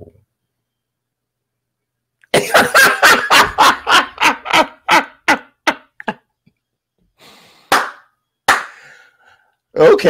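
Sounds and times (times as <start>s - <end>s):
man laughing hard: 2.3s - 6.2s.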